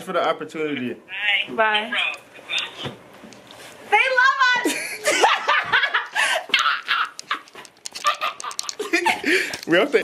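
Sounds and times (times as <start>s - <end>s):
people laughing: 4.6s - 9.6s.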